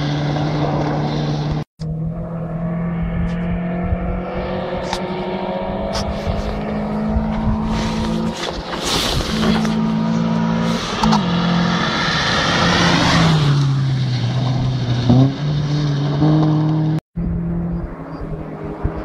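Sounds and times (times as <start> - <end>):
rally car engine at high revs: 0.0 - 19.0
tyres on gravel: 5.9 - 16.7.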